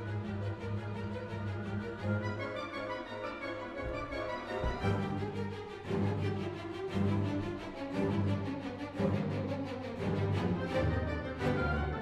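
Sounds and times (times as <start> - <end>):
orchestra playing sustained chords: 0.0 - 12.0.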